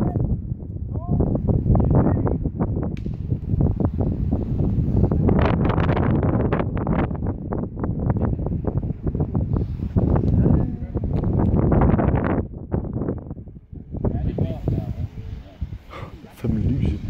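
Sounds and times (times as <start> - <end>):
wind buffeting microphone: 0.0 - 17.0
people talking nearby: 14.0 - 17.0.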